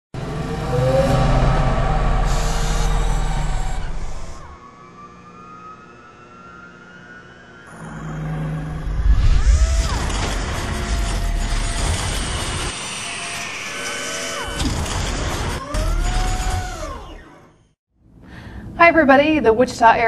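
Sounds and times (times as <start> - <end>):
slow rising tones: 0.2 - 11.7.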